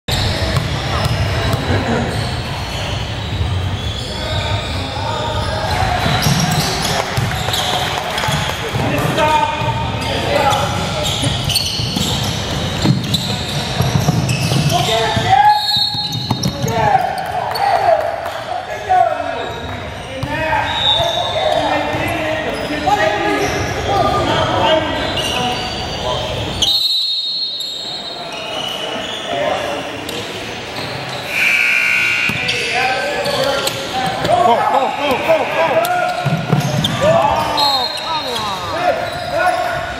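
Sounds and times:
voices of players and spectators: 0.1s - 39.9s
basketball bouncing on wooden floor: 11.8s - 15.3s
loud high-pitched tone: 31.3s - 32.5s.

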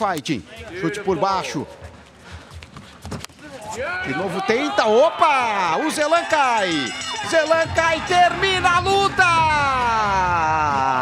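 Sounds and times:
commentator speaking: 0.0s - 1.9s, 3.7s - 10.8s
feet shuffling: 0.5s - 4.4s.

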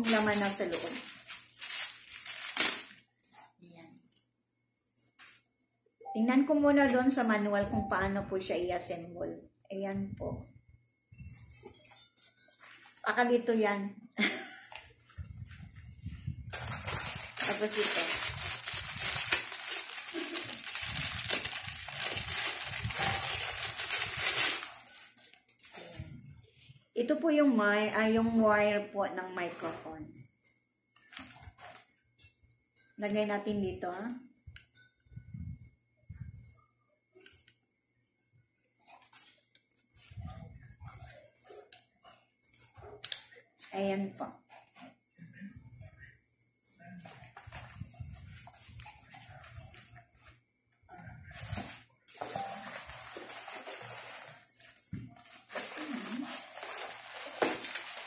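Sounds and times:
woman laughing softly: 14.2s - 15.2s.

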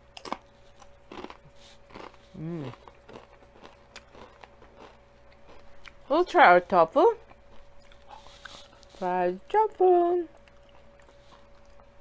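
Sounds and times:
person chewing: 0.1s - 6.1s, 7.2s - 9.0s, 10.3s - 12.0s.

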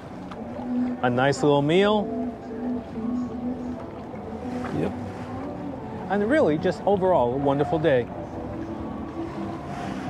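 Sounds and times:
water noise: 0.0s - 10.0s
wind: 0.0s - 10.0s.

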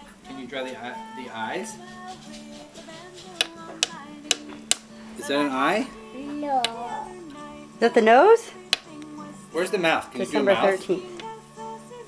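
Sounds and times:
chalk tapping on chalkboard: 1.9s - 4.8s.

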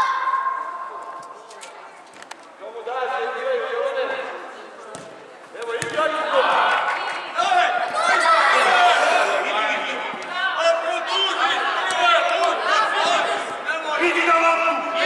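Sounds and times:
high-pitched shouts in hall: 0.0s - 1.2s
ball kick thuds: 4.9s - 6.0s.

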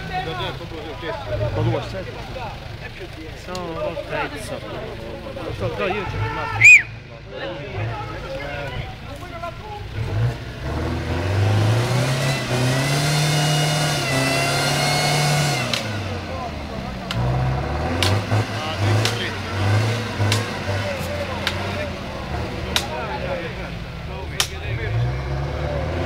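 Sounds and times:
pickup engine revving: 7.8s - 26.0s.

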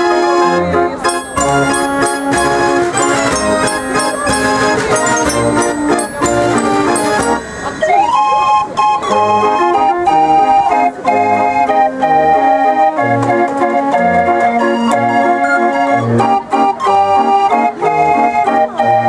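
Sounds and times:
street organ playing a tune: 0.0s - 19.0s.

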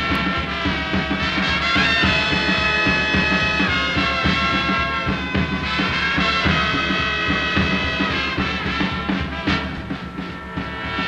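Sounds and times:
brass holding high note: 0.0s - 11.0s
drum beat: 0.0s - 11.0s
swing big band playing: 0.0s - 11.0s.

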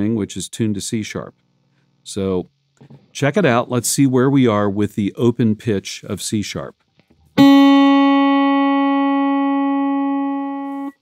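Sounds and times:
electric guitar sustained note: 7.4s - 11.0s.

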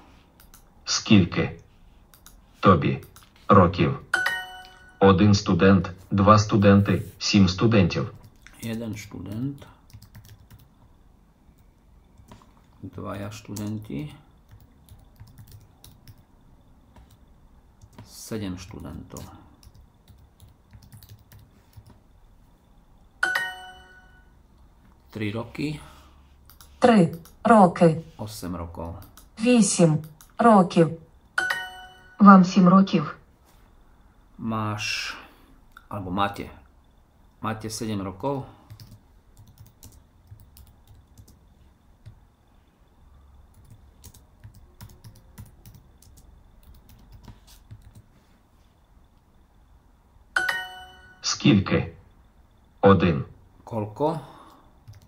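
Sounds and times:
keyboard typing clicks: 0.4s - 0.7s, 2.1s - 2.4s, 8.2s - 10.7s, 13.4s - 16.3s, 17.8s - 22.0s, 26.4s - 27.4s, 28.8s - 29.3s, 30.0s - 30.4s, 38.7s - 41.4s, 43.5s - 48.1s
bright chime: 4.2s - 5.0s, 23.2s - 24.2s, 31.4s - 32.2s, 50.4s - 51.3s.

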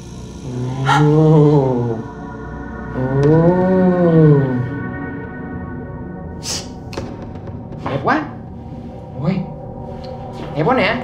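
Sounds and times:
low pained cry: 0.0s - 5.4s
droning music score: 0.0s - 11.0s.

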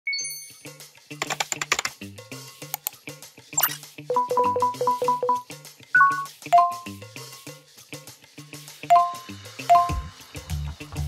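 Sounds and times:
light background music: 0.3s - 11.0s.

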